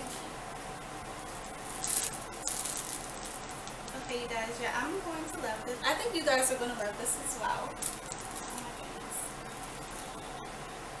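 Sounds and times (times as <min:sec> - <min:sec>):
soft rush of hissing noise: 0:00.0 - 0:11.0
steady background hiss: 0:00.0 - 0:11.0.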